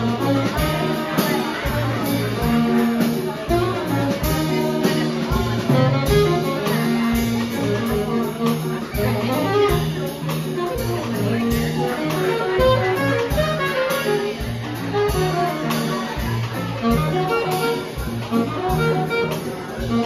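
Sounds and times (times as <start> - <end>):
drum kit with cymbals: 0.0 - 20.0
guitar: 0.0 - 20.0
saxophones: 0.0 - 20.0
trumpet: 0.0 - 20.0
walking bass line: 0.0 - 20.0.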